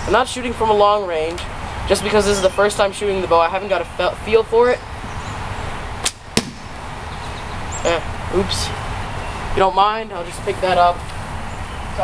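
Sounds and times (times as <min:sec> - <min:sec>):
bowstring snap: 0:06.0 - 0:06.6
arrow hitting cardboard target: 0:06.0 - 0:06.7.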